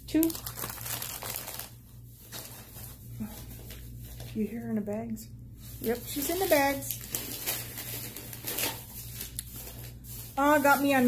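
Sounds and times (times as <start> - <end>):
shopping bags rustling and crinkling: 0.0 - 4.7, 5.6 - 11.0.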